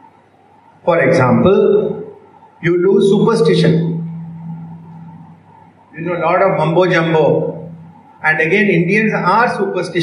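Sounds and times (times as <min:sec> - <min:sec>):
low electrical hum: 0:00.0 - 0:10.0
man's amplified voice reverberating: 0:00.8 - 0:10.0.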